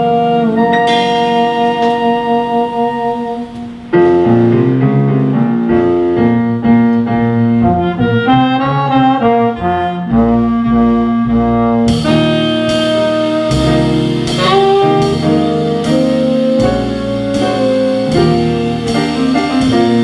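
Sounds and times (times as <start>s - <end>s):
saxophone: 0.0s - 4.4s, 7.4s - 20.0s
trombone sustaining chords: 0.0s - 6.6s, 7.4s - 20.0s
piano: 0.0s - 20.0s
drum kit cymbals with steady beat: 0.4s - 4.0s, 11.9s - 20.0s.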